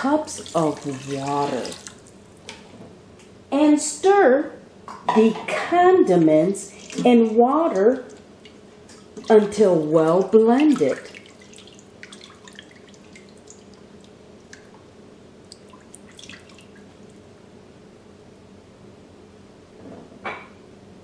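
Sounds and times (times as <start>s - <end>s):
faint liquid splashes and drips: 7.7s - 14.8s, 15.4s - 17.2s.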